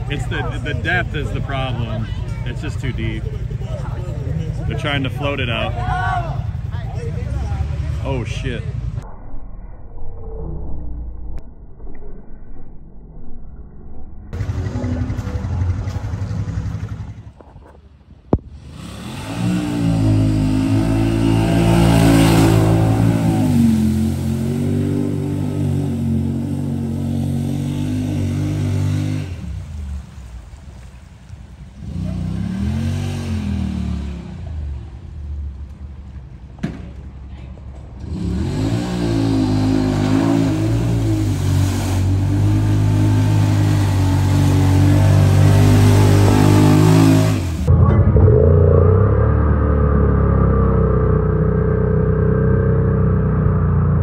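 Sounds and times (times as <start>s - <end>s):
engine revving: 18.4s - 29.8s, 31.8s - 34.8s, 38.0s - 54.0s.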